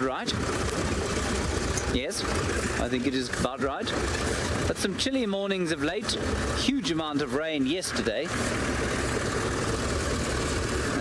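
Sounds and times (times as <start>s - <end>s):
rushing driving noise: 0.0s - 11.0s
vehicle engine rumble: 0.0s - 11.0s.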